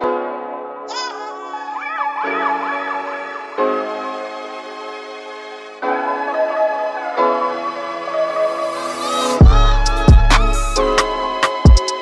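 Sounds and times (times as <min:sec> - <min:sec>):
held keyboard chords: 0:00.0 - 0:12.0.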